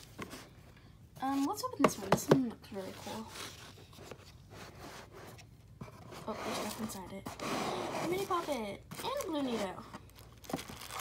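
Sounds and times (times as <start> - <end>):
cardboard box lid scraping: 4.6 - 8.7.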